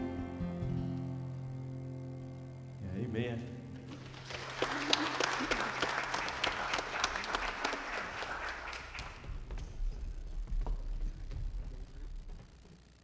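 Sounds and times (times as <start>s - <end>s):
congregation applauding: 3.9s - 12.0s.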